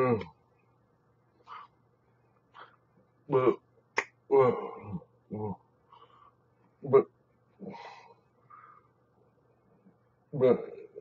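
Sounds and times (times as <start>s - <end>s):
man making wordless syllables: 0.0s - 0.4s, 3.2s - 5.7s, 6.8s - 7.2s, 10.3s - 11.0s.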